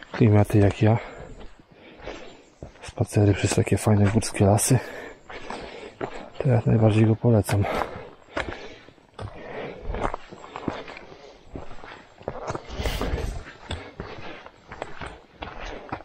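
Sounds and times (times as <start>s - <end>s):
footsteps crunching on rocky trail: 0.0s - 16.0s.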